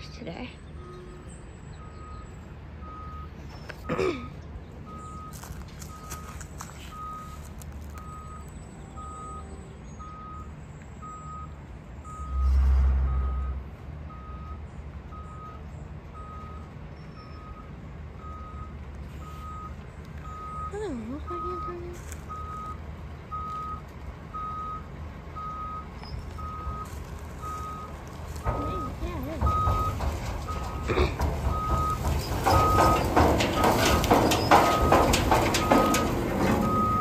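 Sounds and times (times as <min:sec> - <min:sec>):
diesel engine running: 0:00.0 - 0:37.0
low truck rumble: 0:00.0 - 0:37.0
truck backup alarm beeping: 0:00.4 - 0:37.0.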